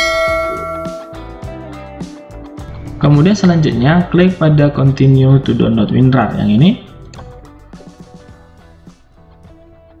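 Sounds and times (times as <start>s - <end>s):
bell chime: 0.0s - 1.5s
background music: 0.0s - 10.0s.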